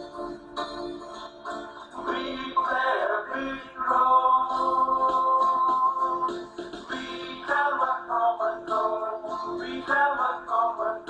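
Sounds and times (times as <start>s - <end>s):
electronic keyboard: 0.0s - 11.0s
group of singers: 2.0s - 6.3s, 6.9s - 11.0s.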